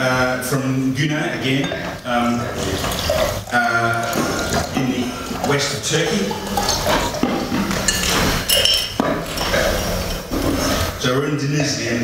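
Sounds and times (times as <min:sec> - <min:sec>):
room noise: 0:00.0 - 0:12.0
wine glasses clinking: 0:01.4 - 0:03.0, 0:04.0 - 0:09.8.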